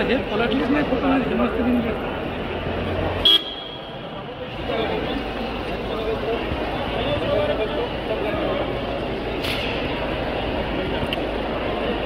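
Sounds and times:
crowd chatter: 0:00.0 - 0:12.0
vehicle horn toot: 0:03.2 - 0:04.0.

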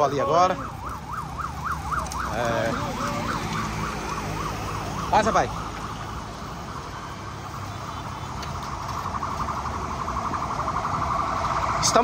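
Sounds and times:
low traffic rumble: 0:00.0 - 0:12.0
siren yelping: 0:00.0 - 0:12.0.

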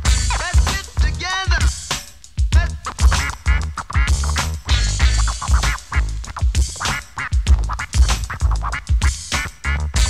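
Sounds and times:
heavy hip hop drum beat: 0:00.0 - 0:10.0
turntable scratching: 0:00.0 - 0:10.0.

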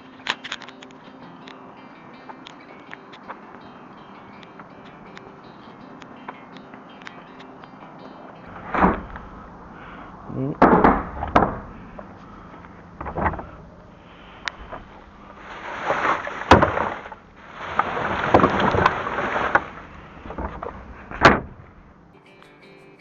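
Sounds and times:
loud bumps and rustles: 0:08.5 - 0:09.7, 0:10.4 - 0:21.8
footsteps: 0:10.7 - 0:19.8.

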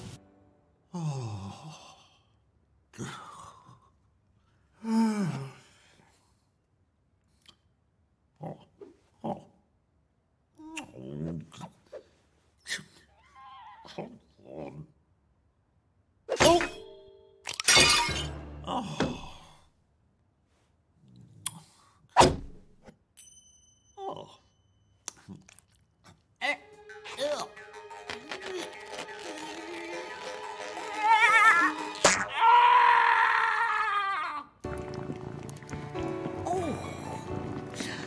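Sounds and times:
bowl smashing: 0:17.5 - 0:18.4, 0:34.7 - 0:38.0.

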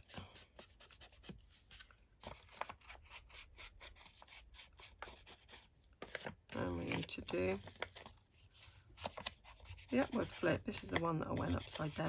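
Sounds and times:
ink tool rubbing on paper: 0:09.4 - 0:12.0.

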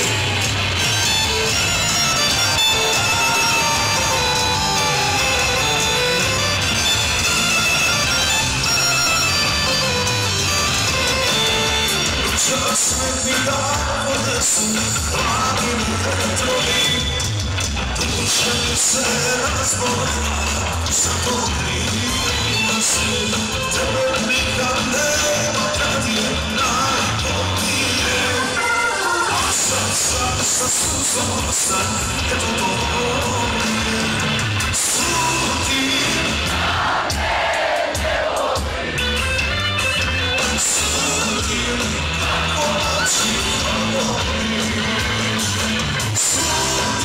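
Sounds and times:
steady bass line: 0:00.0 - 0:28.6, 0:29.4 - 0:37.3, 0:38.0 - 0:47.0
live band playing pop-folk: 0:00.0 - 0:47.0
person singing: 0:01.2 - 0:06.6, 0:10.4 - 0:17.3, 0:18.0 - 0:36.7, 0:40.4 - 0:47.0.

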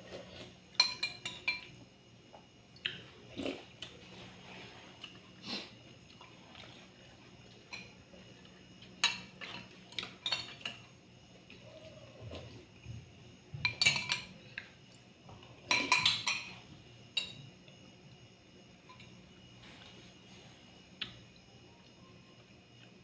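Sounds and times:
metal spoons clinking on bowls: 0:00.8 - 0:01.7, 0:09.0 - 0:10.8, 0:13.6 - 0:14.3, 0:15.7 - 0:17.4.

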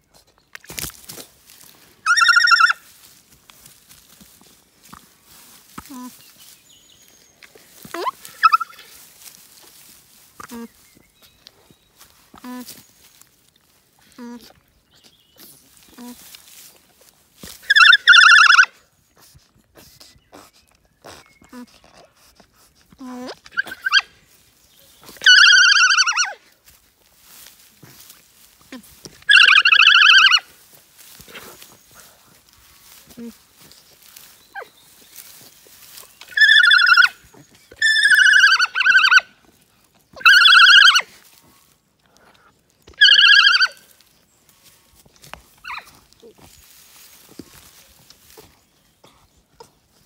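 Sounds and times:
alpaca humming: 0:02.0 - 0:02.9, 0:07.8 - 0:09.0, 0:17.6 - 0:18.7, 0:22.9 - 0:24.1, 0:25.1 - 0:26.5, 0:27.4 - 0:31.7, 0:36.2 - 0:39.3, 0:40.2 - 0:41.1, 0:42.9 - 0:43.8
lamb bleating: 0:02.1 - 0:02.8, 0:29.3 - 0:30.4.

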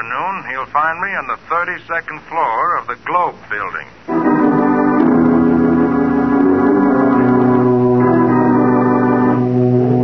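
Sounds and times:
organ sustained chords: 0:00.0 - 0:10.0.

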